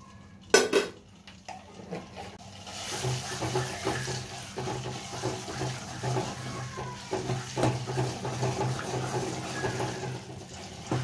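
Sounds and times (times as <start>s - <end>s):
metal kitchen utensils clattering: 0.5s - 11.0s.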